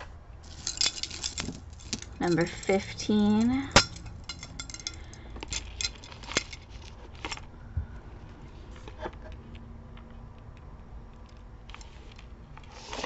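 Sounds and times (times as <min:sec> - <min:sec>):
metal chain clinking: 0:00.4 - 0:06.8.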